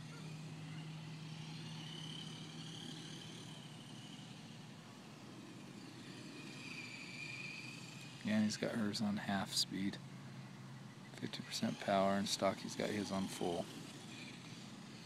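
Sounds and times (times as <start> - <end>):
electric motors whining: 0.0 - 15.0.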